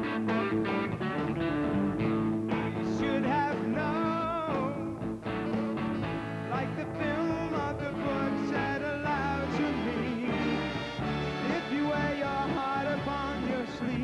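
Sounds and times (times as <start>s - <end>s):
drums: 0.0s - 14.0s
electric guitar: 0.0s - 14.0s.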